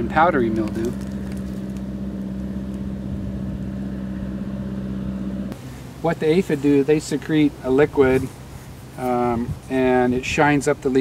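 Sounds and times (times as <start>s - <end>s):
engine humming steadily: 0.0s - 11.0s.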